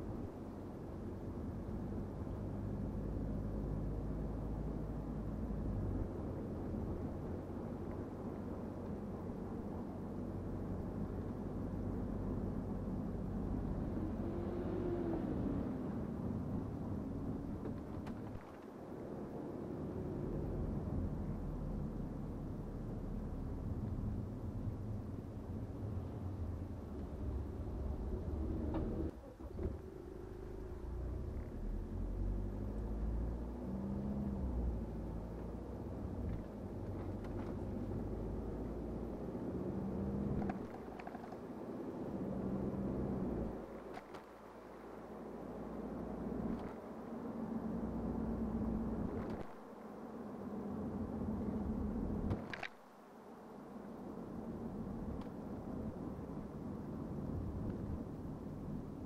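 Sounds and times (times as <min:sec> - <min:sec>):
diesel car engine: 0:00.0 - 0:59.0
road noise inside car: 0:00.0 - 0:59.0.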